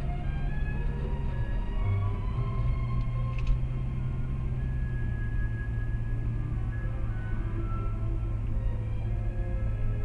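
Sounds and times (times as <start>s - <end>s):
car driving rumble: 0.0s - 10.0s
music with long held notes: 0.0s - 10.0s.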